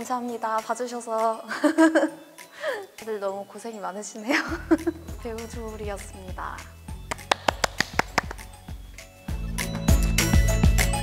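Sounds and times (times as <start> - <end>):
soft background music: 0.0 - 11.0
person clapping hands: 7.1 - 8.6.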